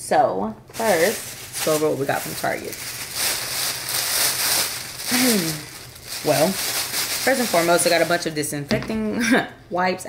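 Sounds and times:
plastic bag crinkling: 0.7s - 8.6s.

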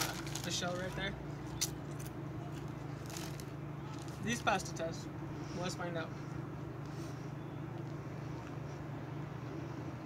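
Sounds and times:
street traffic hum: 0.0s - 10.0s.

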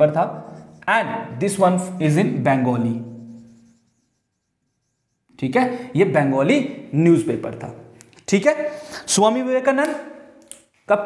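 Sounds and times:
man speaking: 0.0s - 3.2s
marker strokes on a whiteboard: 0.0s - 5.8s.

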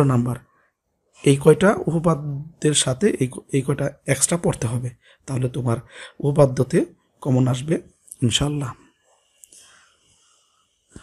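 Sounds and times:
soft breath in: 5.9s - 6.2s, 9.1s - 11.0s
faint mouth click: 9.4s - 9.6s.

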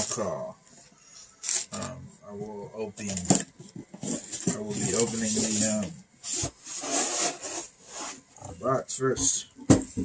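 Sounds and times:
box scraping and rubbing: 3.9s - 8.4s.

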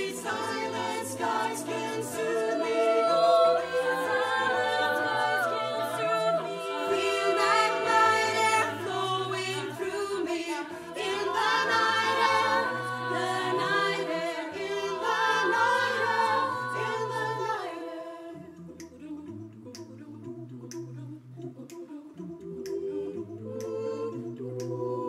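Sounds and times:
choir singing wordless chords: 0.0s - 25.0s.

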